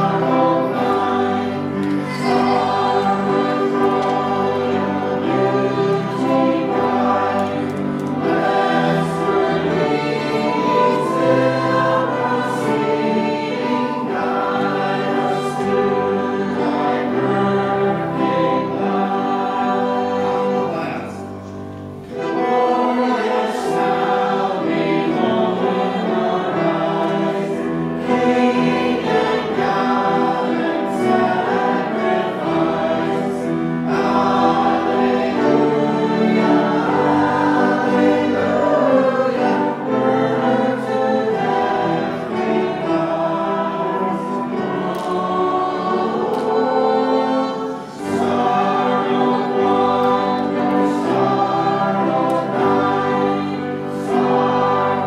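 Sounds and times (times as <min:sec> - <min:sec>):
congregation singing a hymn: 0:00.0 - 0:55.0
piano: 0:00.0 - 0:55.0
violin: 0:00.0 - 0:55.0.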